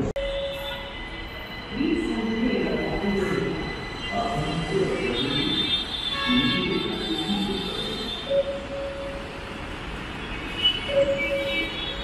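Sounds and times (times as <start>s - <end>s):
train ride rumble: 0.0s - 5.7s
train high whine: 0.0s - 6.1s.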